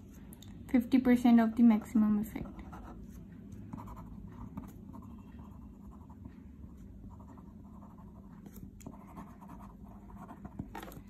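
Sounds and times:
pen scratching on paper: 2.4 - 11.0.

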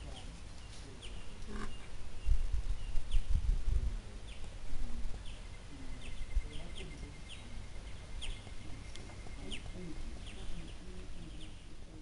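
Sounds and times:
wind buffeting microphone: 1.0 - 11.7.

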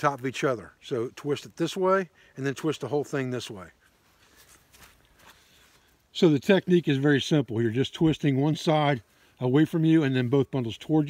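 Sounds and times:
faint soft rustles: 3.1 - 6.2.

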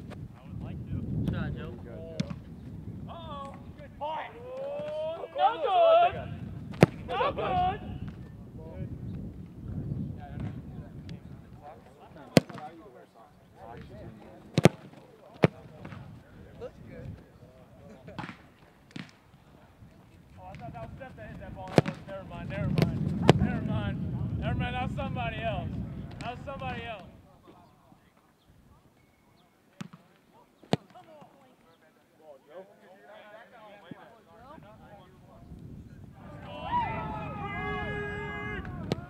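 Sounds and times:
boot kicking football thuds: 2.1 - 2.6, 6.6 - 7.2, 14.5 - 16.1, 20.5 - 23.7
faint distant voices: 3.1 - 39.0.

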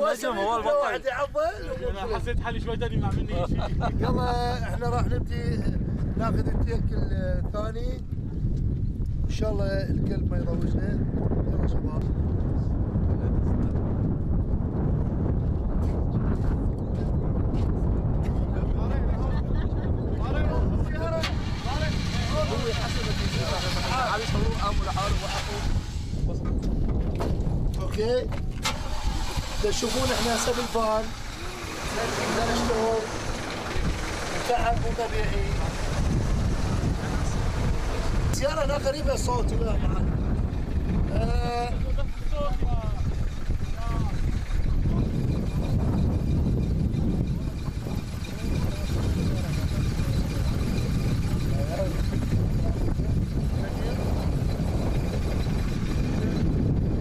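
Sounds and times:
men talking indistinctly: 0.0 - 8.3, 9.2 - 13.9, 15.8 - 56.8
wind buffeting microphone: 0.0 - 57.0
steady low rumble: 1.4 - 57.0
faint voices: 28.2 - 56.6.

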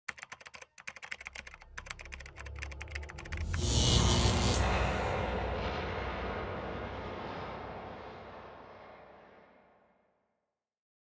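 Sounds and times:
rapid irregular clicking: 0.1 - 3.6
low hum: 2.7 - 10.3.

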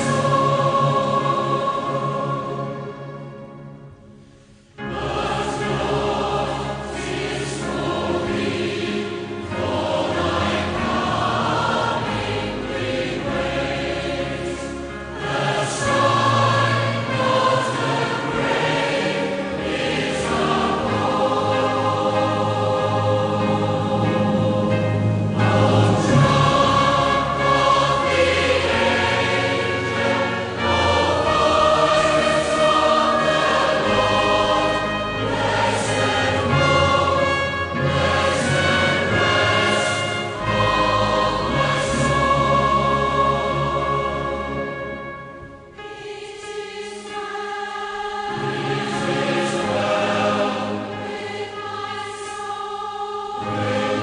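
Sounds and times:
choir singing sustained chords: 0.0 - 54.0
instrumental accompaniment: 0.0 - 54.0.

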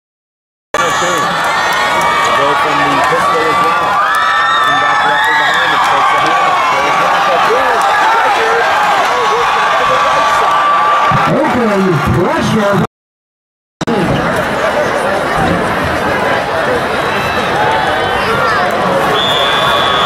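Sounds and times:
crowd shouting and cheering: 0.8 - 12.9, 13.9 - 20.0.

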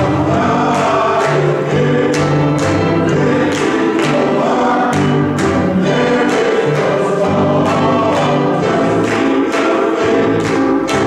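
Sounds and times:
men's choir singing in harmony: 0.0 - 11.0.

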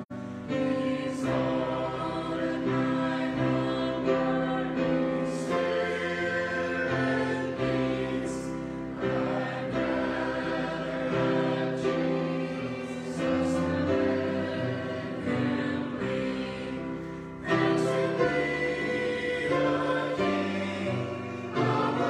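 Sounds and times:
mixed choir singing: 0.0 - 22.0.

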